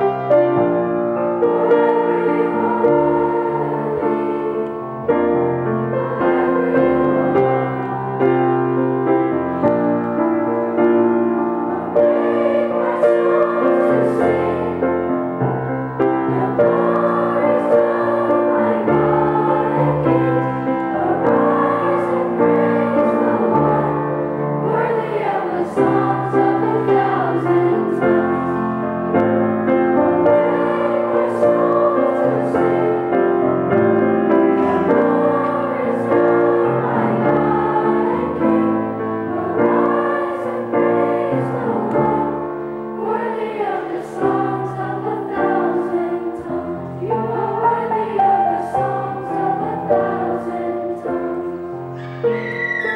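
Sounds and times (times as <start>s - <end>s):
children's choir singing: 0.0s - 52.9s.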